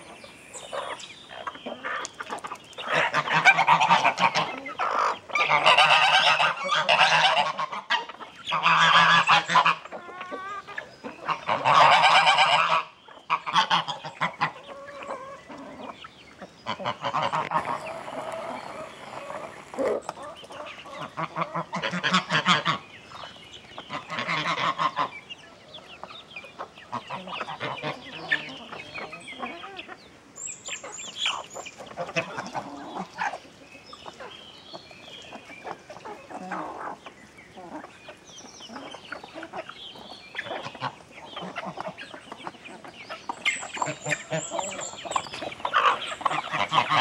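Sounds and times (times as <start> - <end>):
chickens clucking: 0.0 - 47.0.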